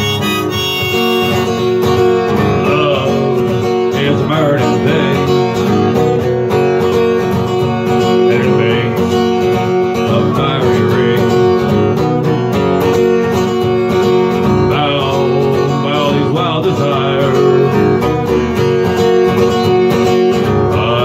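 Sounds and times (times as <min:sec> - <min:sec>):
harmonica melody: 0:00.0 - 0:03.6
acoustic guitar strummed: 0:00.0 - 0:21.0.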